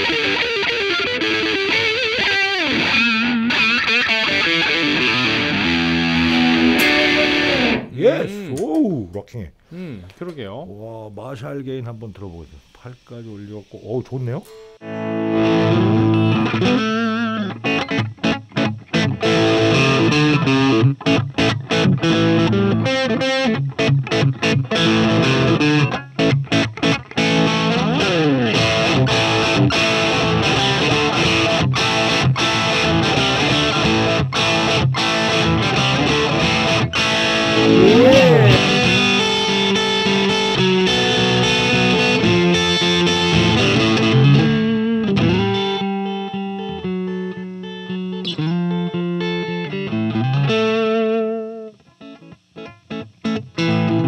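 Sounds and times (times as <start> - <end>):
distorted electric guitar riffing: 0.0 - 8.0, 37.4 - 39.0.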